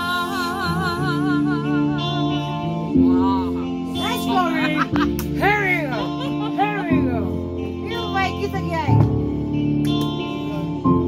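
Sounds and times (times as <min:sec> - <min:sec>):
sustained backing chord: 0:00.0 - 0:11.0.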